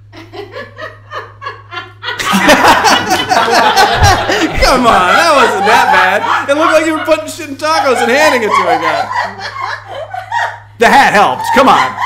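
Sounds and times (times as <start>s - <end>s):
man laughing: 1.6s - 12.0s.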